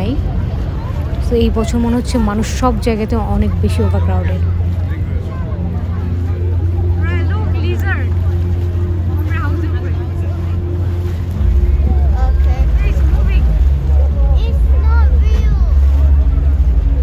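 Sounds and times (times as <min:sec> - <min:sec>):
boat engine droning: 0:00.0 - 0:17.0
people talking: 0:00.0 - 0:17.0.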